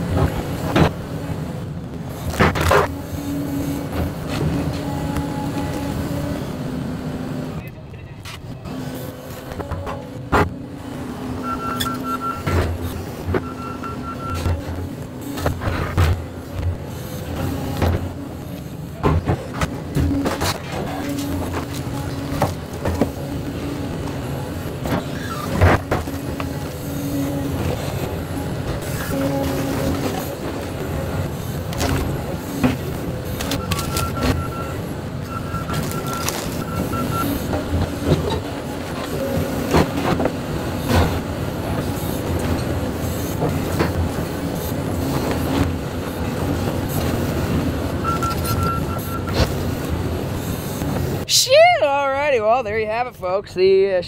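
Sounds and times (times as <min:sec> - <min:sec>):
excavator diesel engine running: 0:00.0 - 0:53.0.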